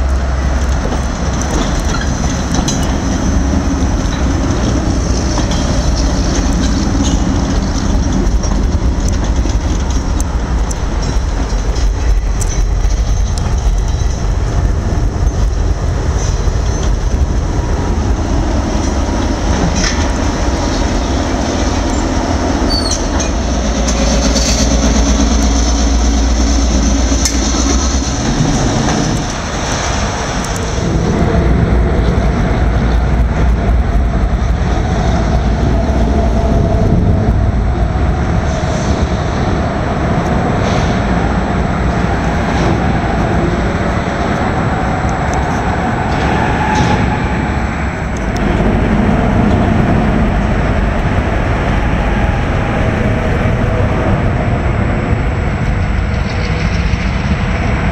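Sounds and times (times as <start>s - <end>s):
diesel locomotive engine drone: 0.0s - 57.9s
freight cars rolling on rails: 0.0s - 57.9s.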